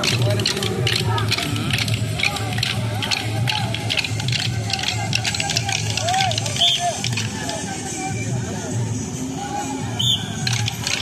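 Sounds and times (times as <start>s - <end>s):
dance sticks clacking: 0.0s - 7.8s, 10.2s - 11.0s
voices: 0.0s - 11.0s.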